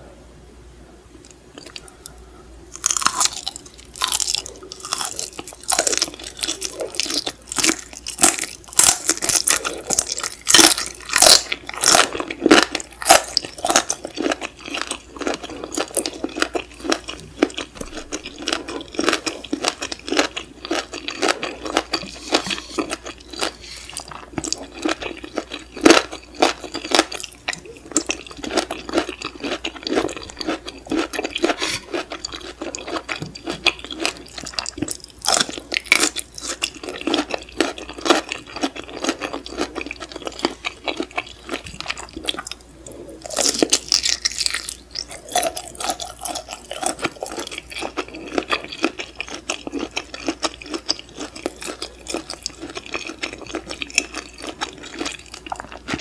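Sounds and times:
crunchy chewing: 1.2 - 56.0.

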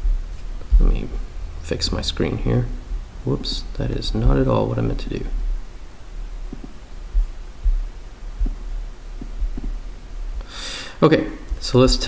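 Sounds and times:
dull low thumps: 0.0 - 10.6
low mains-like hum: 0.0 - 12.0
breath drawn: 10.4 - 11.0.

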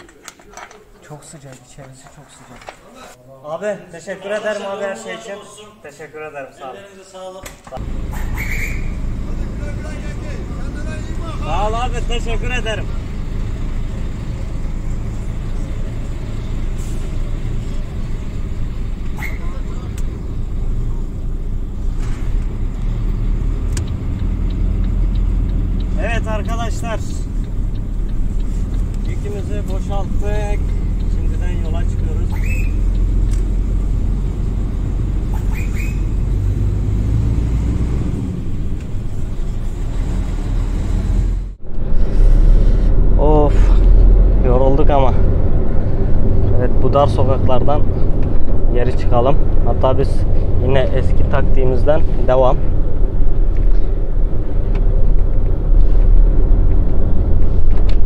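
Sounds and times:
voices: 0.0 - 21.6, 25.2 - 33.9
diesel truck engine rumbling: 7.8 - 58.0.

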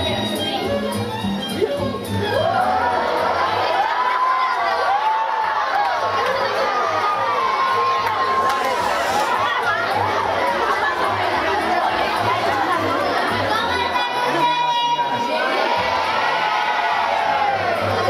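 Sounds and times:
children shouting and chattering: 0.0 - 18.0.

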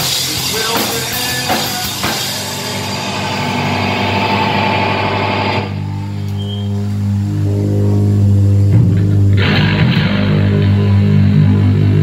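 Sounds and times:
drum kit: 0.0 - 5.9
bass guitar: 0.0 - 12.0
electric guitar: 0.0 - 12.0.

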